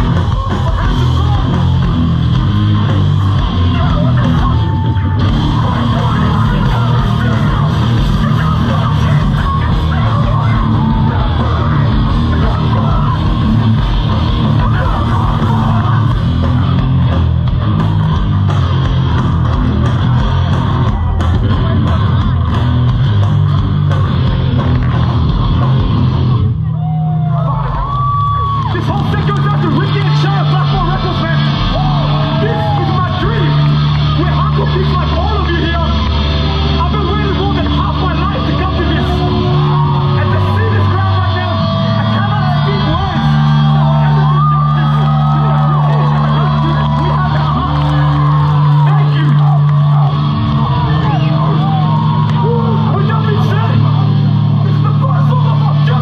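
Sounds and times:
shouted vocals: 0:00.0 - 0:22.9, 0:26.6 - 0:56.0
fast drums: 0:00.0 - 0:26.5, 0:27.6 - 0:56.0
crowd yelling: 0:00.0 - 0:56.0
distorted guitars: 0:00.0 - 0:56.0.

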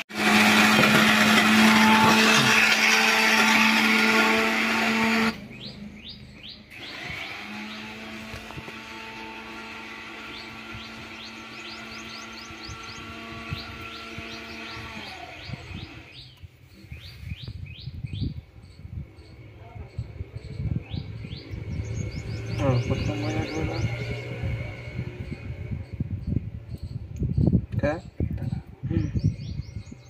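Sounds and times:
birds chirping: 0:04.9 - 0:30.0
low thumps and rumbles: 0:17.4 - 0:30.0.

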